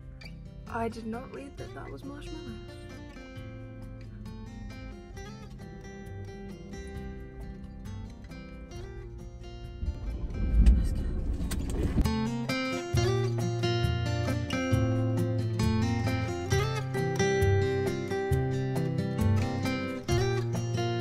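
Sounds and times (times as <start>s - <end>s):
acoustic guitar music: 0.0s - 21.0s
loud low rumble: 9.2s - 12.1s.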